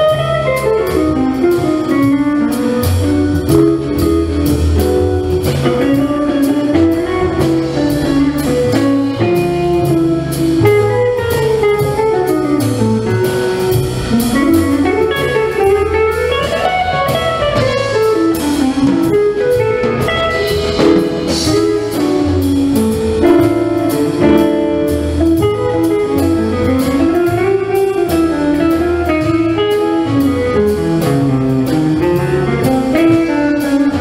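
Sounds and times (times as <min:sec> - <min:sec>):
drum kit cymbal beat: 0:00.0 - 0:34.0
guitar melody: 0:00.0 - 0:34.0
walking bass line: 0:00.0 - 0:34.0.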